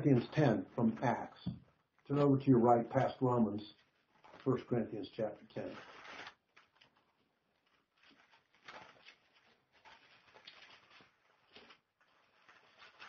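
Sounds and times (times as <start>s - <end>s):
thin pages being turned: 5.6s - 13.0s.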